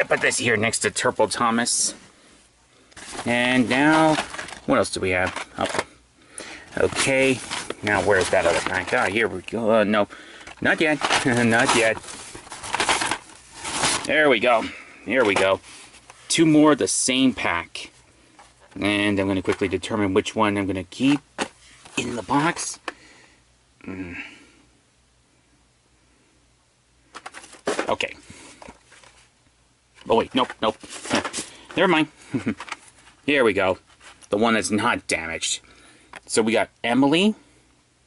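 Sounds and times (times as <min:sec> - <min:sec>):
tote bag rustling and crinkling: 0:03.0 - 0:05.8, 0:06.7 - 0:09.6, 0:10.4 - 0:16.0
plastic packaging crackling: 0:03.0 - 0:05.9, 0:06.6 - 0:16.1, 0:30.1 - 0:33.3.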